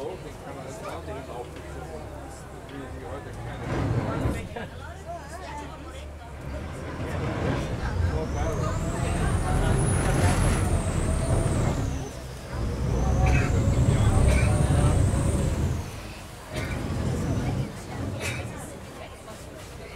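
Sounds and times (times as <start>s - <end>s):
boat diesel engine surging: 0.0s - 19.9s
engine whine rising and falling: 6.4s - 16.2s.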